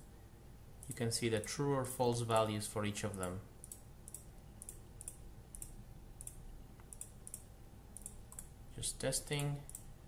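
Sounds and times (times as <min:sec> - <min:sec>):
computer mouse clicks: 0:02.4 - 0:08.5, 0:09.3 - 0:09.9.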